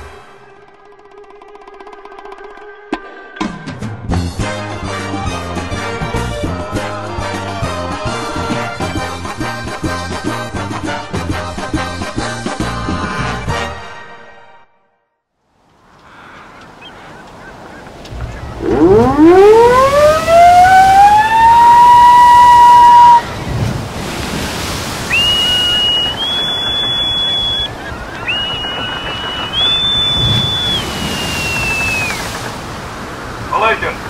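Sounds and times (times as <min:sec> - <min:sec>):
sea and wind noise: 0:15.5 - 0:34.0
high whistled calls: 0:16.8 - 0:23.6, 0:25.0 - 0:32.4
siren winding up: 0:18.1 - 0:23.3.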